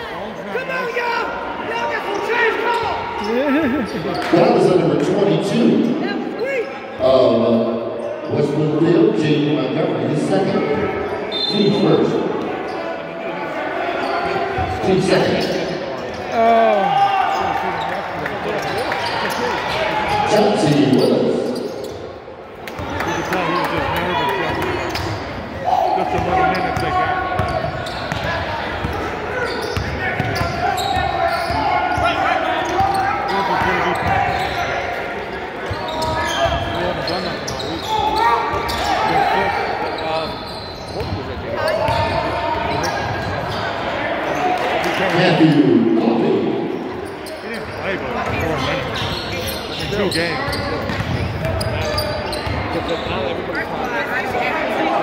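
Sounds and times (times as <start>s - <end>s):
voices in gymnasium: 0.0s - 55.0s.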